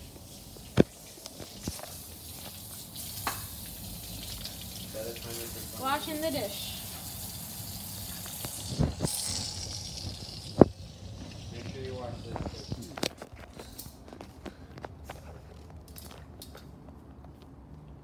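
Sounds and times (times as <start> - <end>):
tap water running into sink: 0.7 - 13.0.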